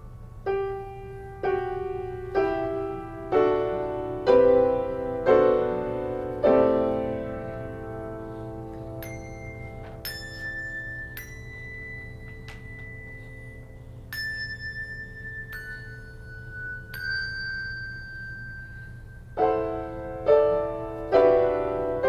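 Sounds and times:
soft held piano notes: 0.0s - 22.0s
handbells ringing: 9.0s - 20.0s.

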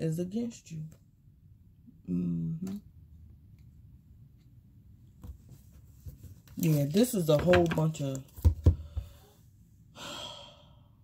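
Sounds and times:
woman sighing: 10.0s - 10.8s.

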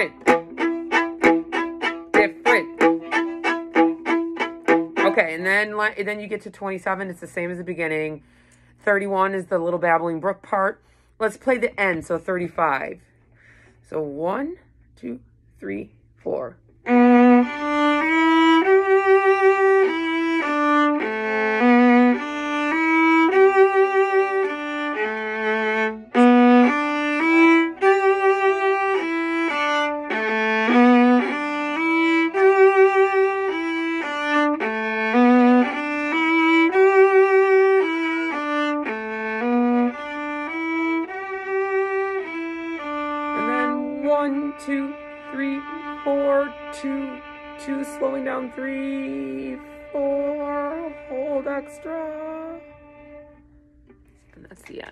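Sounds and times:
solo viola bowed melody: 0.0s - 8.4s, 16.7s - 54.1s.

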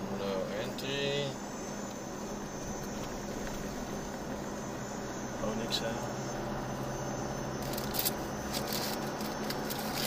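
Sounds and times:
car engine hum: 0.0s - 10.0s
crackling and scraping: 7.6s - 10.0s.

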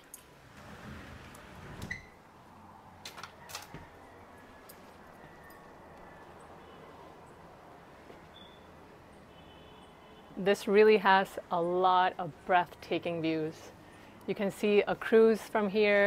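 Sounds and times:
outdoor background: 0.0s - 16.0s
door opening rumble and click: 0.5s - 2.2s.

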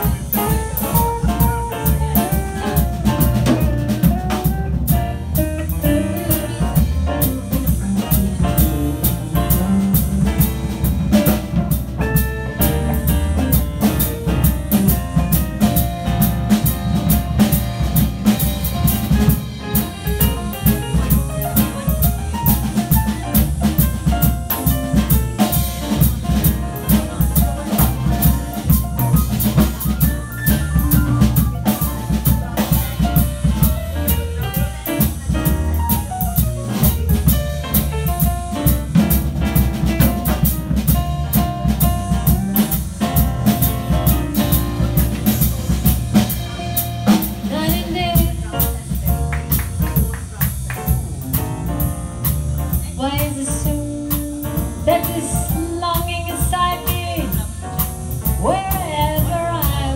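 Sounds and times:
piano: 0.0s - 59.9s
swinging drum beat: 0.0s - 59.9s
walking bass line: 0.0s - 59.9s.

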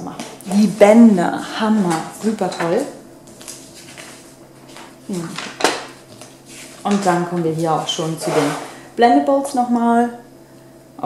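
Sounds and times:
glossy paper pages rustling: 1.7s - 8.5s.

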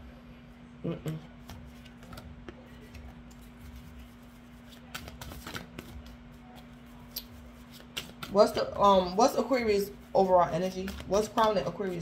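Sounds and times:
cards being shuffled: 1.4s - 8.5s, 10.5s - 12.0s.

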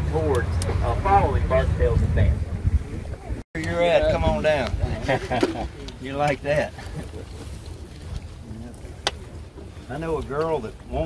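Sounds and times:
steady low rumble: 0.0s - 3.4s
wind buffeting microphone: 0.0s - 11.0s.

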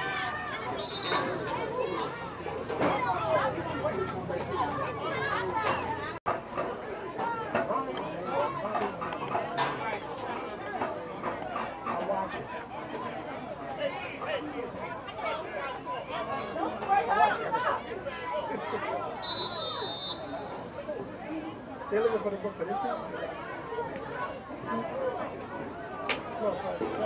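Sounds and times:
people chatting: 0.0s - 27.0s
referee's whistle blast: 0.8s - 1.3s, 19.2s - 20.4s.

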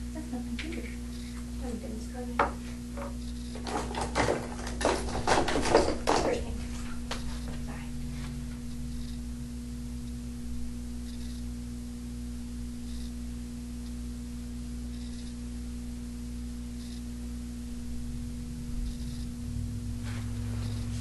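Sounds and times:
electrical hum: 0.0s - 21.0s.

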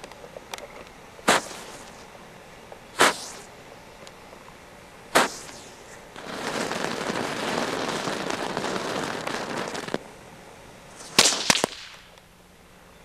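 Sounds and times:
firework crackling spray: 1.2s - 2.1s, 2.9s - 3.6s, 5.1s - 10.1s, 10.9s - 12.2s
firecracker bangs: 1.3s - 1.8s, 3.0s - 3.5s, 5.2s - 10.0s, 11.0s - 12.1s.

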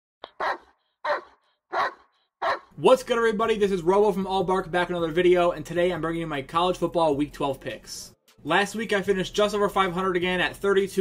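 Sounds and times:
dog barking: 0.3s - 2.7s.

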